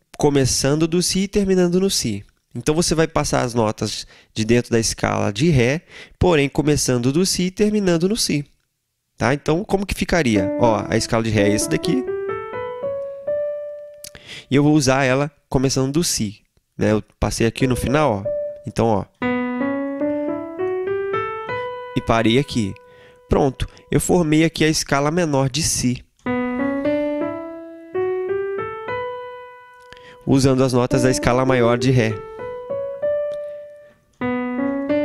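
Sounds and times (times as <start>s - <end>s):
digital piano rising scale: 10.4s - 14.1s, 17.6s - 23.8s, 26.3s - 35.0s.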